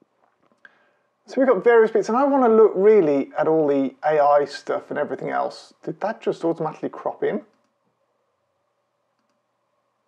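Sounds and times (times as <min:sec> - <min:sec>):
faint computer mouse click: 0:09.1 - 0:09.5.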